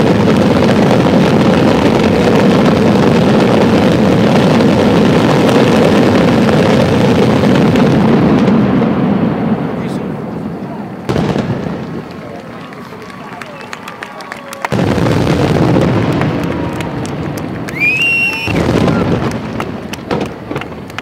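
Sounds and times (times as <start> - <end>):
firework booms: 0.0 - 12.7, 13.8 - 21.0
firework crackling: 0.0 - 21.0
firework whistle: 12.5 - 20.3.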